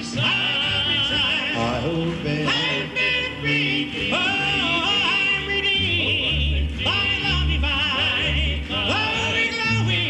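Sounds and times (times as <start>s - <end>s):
male vocal quartet singing harmony: 0.0s - 10.0s.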